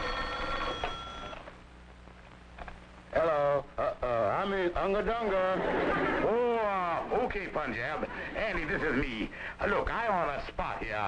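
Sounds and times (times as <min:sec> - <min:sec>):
telephone bell ringing: 0:00.0 - 0:01.4.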